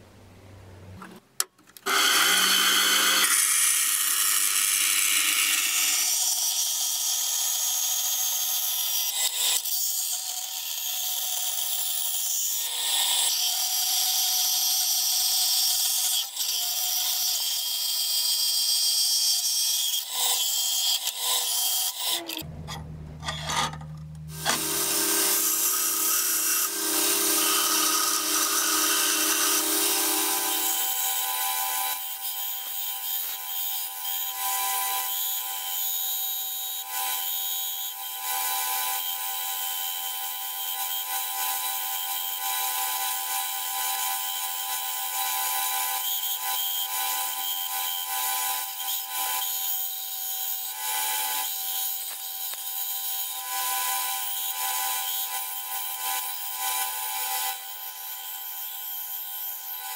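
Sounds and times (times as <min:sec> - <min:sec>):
belt grinder grinding steel: 0:01.8 - 0:53.5, 0:54.1 - 0:59.9
power saw cutting: 0:01.8 - 0:59.9
low hum: 0:22.3 - 0:24.9.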